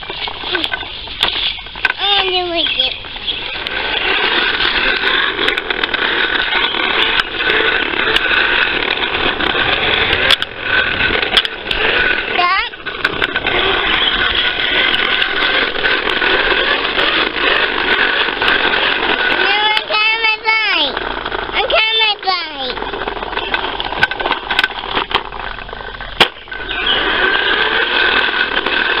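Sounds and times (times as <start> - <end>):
toy lawnmower clattering: 0.0 - 29.0.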